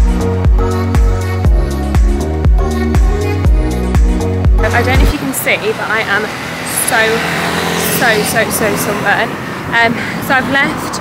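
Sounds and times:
music beat: 0.0 - 5.3
street and vehicle noise: 0.0 - 11.0
woman talking: 4.6 - 7.3, 7.9 - 11.0.

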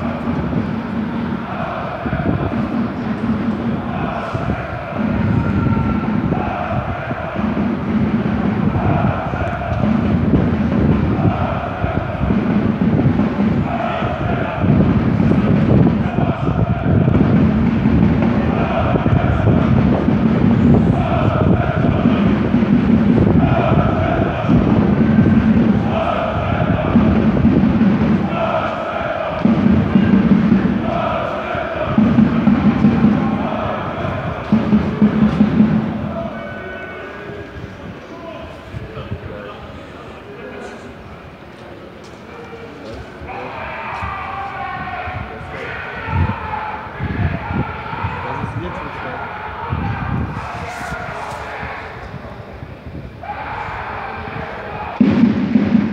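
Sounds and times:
crowd chanting in unison: 0.0 - 55.9.

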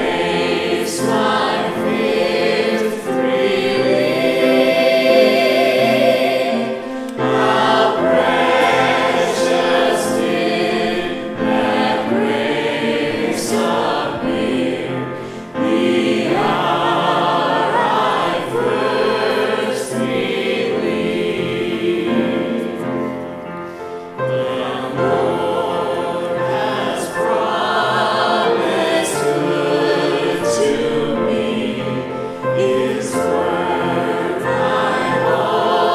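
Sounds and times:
grand piano: 0.0 - 35.9
vocal group singing in harmony: 0.0 - 35.9.

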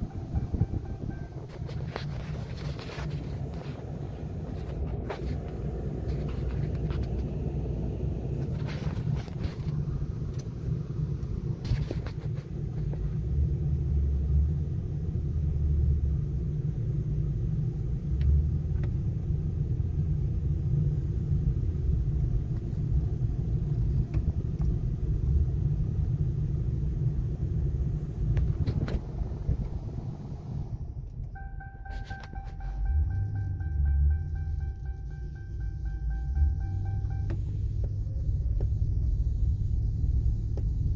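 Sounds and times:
steady high tone: 0.0 - 4.0, 31.3 - 38.4
car engine low rumble: 0.0 - 40.9
road noise: 0.0 - 40.9.

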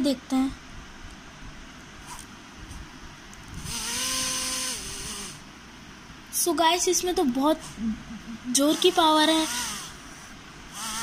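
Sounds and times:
toy motor whining: 3.6 - 5.4, 8.5 - 11.0.

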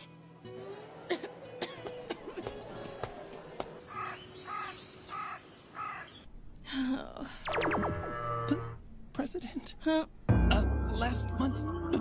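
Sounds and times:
crow cawing: 3.9 - 6.2.

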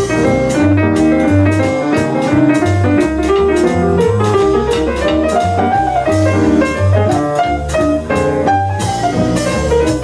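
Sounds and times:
electric jazz guitar: 0.0 - 10.0
low bass notes: 0.0 - 10.0
piano playing: 0.0 - 10.0.

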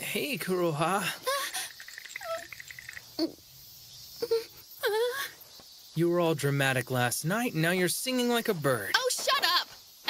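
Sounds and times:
young woman whimpering and moaning: 1.2 - 2.5, 4.2 - 5.4.

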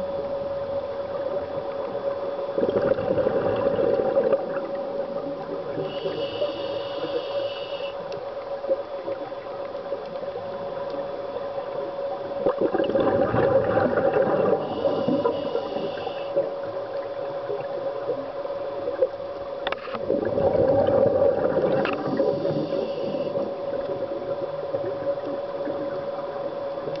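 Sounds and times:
steady underwater hum: 0.0 - 27.0
bubbly regulator exhalations: 2.6 - 4.7, 12.5 - 15.3, 20.0 - 23.5.

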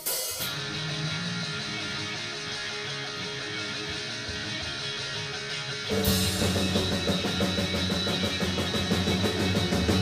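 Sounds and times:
drums and bass beat: 0.0 - 10.0
rock band playing loudly: 0.0 - 10.0.

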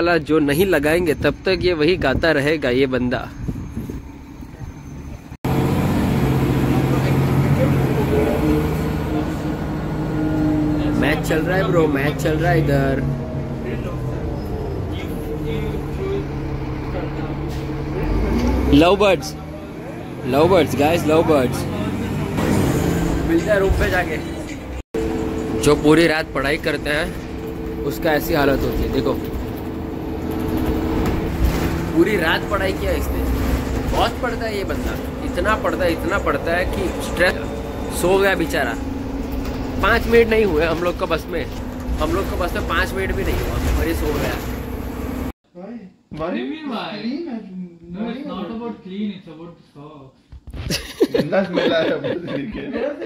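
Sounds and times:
road noise: 0.0 - 45.4
bus engine drone: 2.8 - 45.4.

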